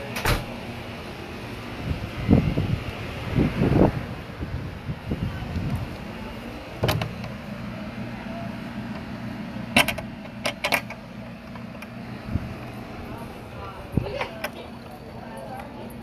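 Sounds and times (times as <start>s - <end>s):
low mechanical hum: 0.0s - 16.0s
faint voices: 4.8s - 9.2s, 11.7s - 16.0s
gate latch clicks and knocks: 6.8s - 7.4s, 9.7s - 11.0s.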